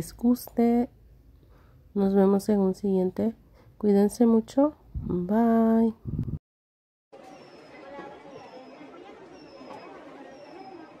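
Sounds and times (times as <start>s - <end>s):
indistinct shopper chatter: 7.2s - 11.0s.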